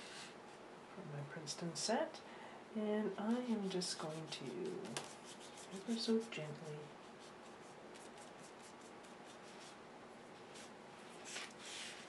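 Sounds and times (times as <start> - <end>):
paintbrush strokes on paper: 3.1 - 12.0.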